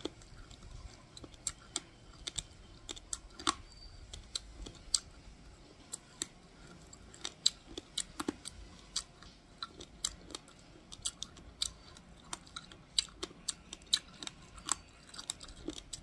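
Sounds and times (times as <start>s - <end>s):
rice grains crunching when chewed: 0.0s - 16.0s.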